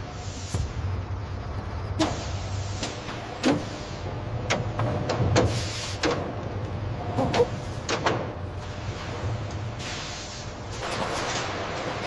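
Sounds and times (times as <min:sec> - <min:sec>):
machinery humming: 0:00.0 - 0:12.0.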